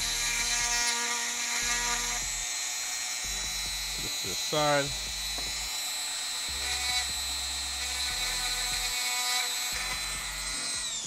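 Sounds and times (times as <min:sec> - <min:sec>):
rotary tool whining: 0:00.0 - 0:11.0
motor spinning down: 0:01.6 - 0:11.0.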